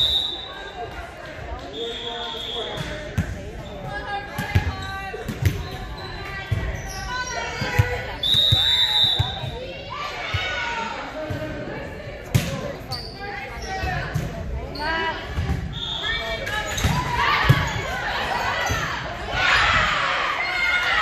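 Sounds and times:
referee's whistle blast: 0.0s - 0.7s, 1.7s - 3.0s, 8.2s - 9.5s
ball thuds echoing in a gym: 2.6s - 5.8s, 7.5s - 9.7s.

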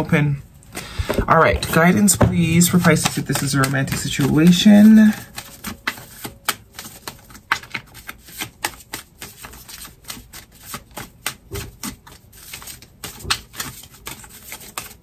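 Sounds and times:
cards being shuffled: 0.8s - 15.0s.

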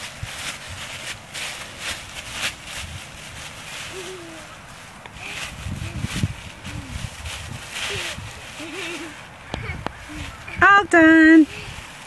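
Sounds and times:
dry leaves rustling and crunching: 0.0s - 12.0s
thumps of feet in leaves: 0.0s - 12.0s.

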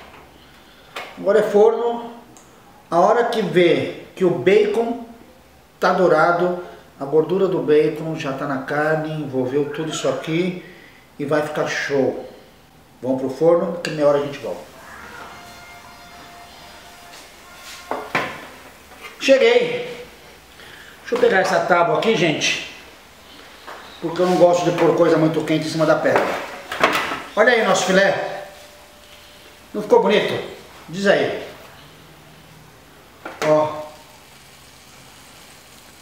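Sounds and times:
faint steady sizzle of meat: 16.2s - 36.0s.

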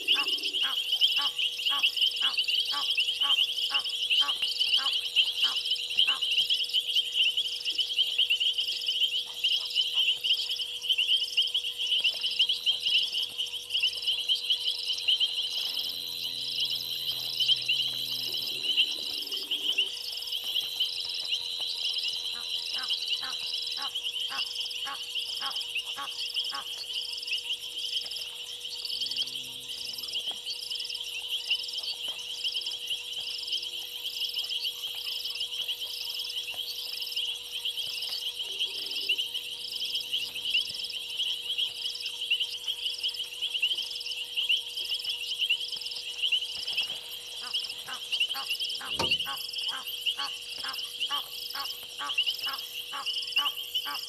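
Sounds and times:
high insect and frog trilling: 0.0s - 54.0s
rapid rhythmic clicking calls: 0.0s - 54.0s.

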